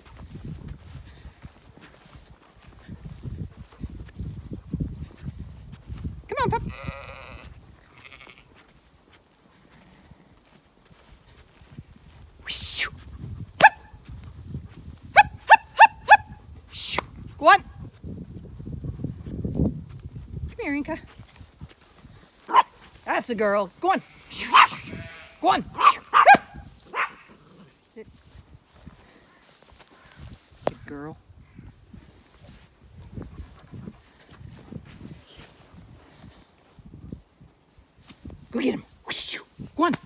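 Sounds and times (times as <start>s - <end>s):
small dog yapping: 13.6s - 13.9s, 22.5s - 22.7s, 24.4s - 25.0s, 25.8s - 27.3s.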